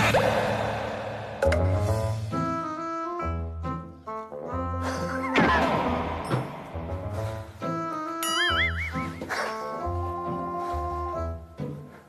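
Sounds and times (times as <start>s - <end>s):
light background music: 1.4s - 12.0s
high warbling tone: 8.2s - 9.2s.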